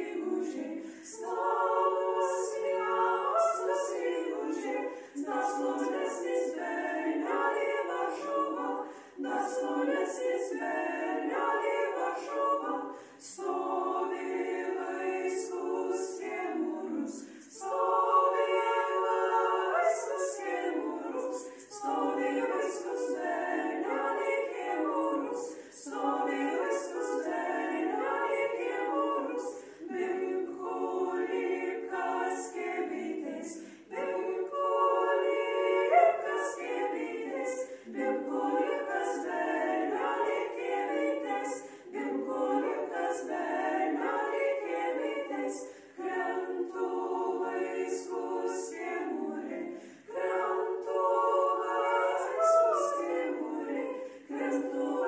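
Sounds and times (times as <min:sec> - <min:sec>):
women singing a cappella: 0:00.0 - 0:55.0.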